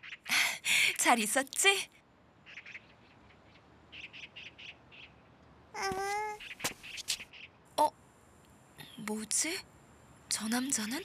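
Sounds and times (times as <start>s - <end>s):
faint bird chirping: 0.0s - 1.5s, 2.4s - 8.1s, 8.7s - 11.0s.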